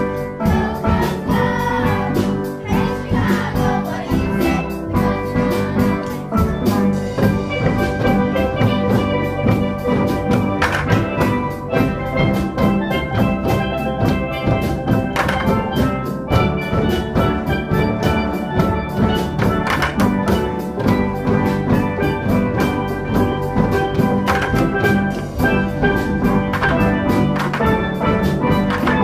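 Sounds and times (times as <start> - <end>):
bucket drums beating: 0.0 - 29.0
steel pans playing a tune: 0.0 - 29.0.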